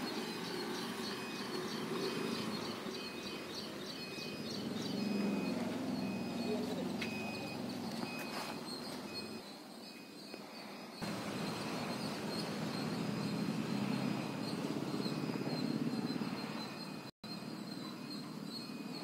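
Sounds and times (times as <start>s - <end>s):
faint high chirps: 0.0s - 19.0s
thin steady high buzz: 9.3s - 19.0s.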